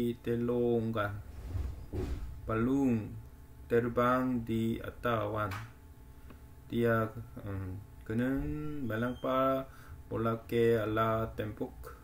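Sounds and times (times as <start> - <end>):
man reading aloud: 0.0 - 1.3, 2.4 - 5.7, 6.7 - 12.0.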